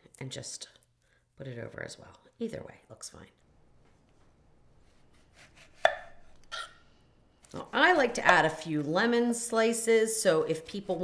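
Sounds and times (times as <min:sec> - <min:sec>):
knife cutting lemon: 0:04.9 - 0:06.7.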